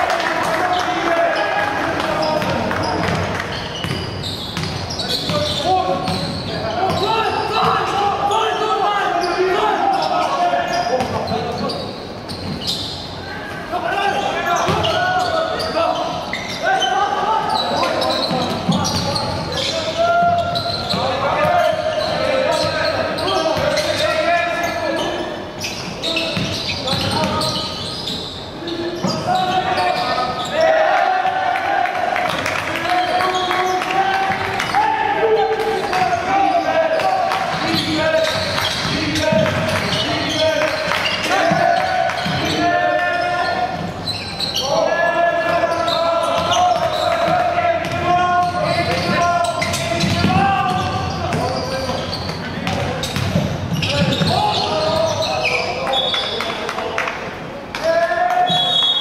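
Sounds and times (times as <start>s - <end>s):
voices in echoing hall: 0.0s - 59.0s.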